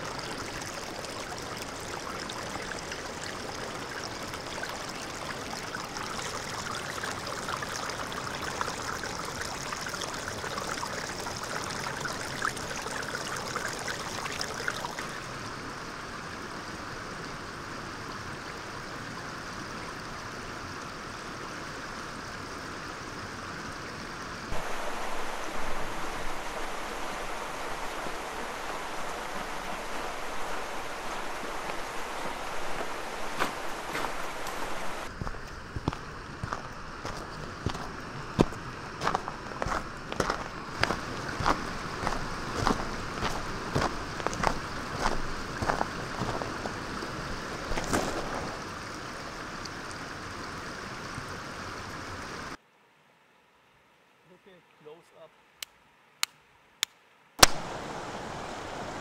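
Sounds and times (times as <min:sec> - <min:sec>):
brook water running over stones: 0:00.0 - 0:52.6, 0:57.4 - 0:59.0.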